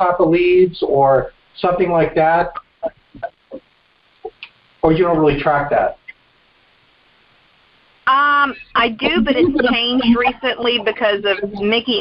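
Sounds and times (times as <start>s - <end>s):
phone line hiss: 0.0s - 12.0s.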